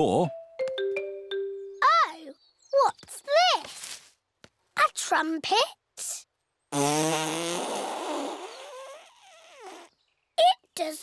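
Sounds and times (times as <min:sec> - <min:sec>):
buzzing toy tail blown: 0:06.8 - 0:09.9.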